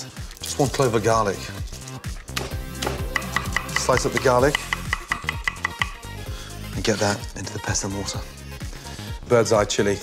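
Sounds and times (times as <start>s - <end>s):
knife chopping on wooden board: 2.3s - 6.1s.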